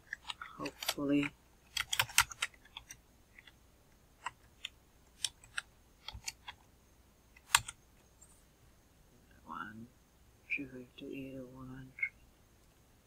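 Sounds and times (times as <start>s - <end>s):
computer keyboard keystrokes: 0.1s - 3.5s, 7.4s - 7.8s.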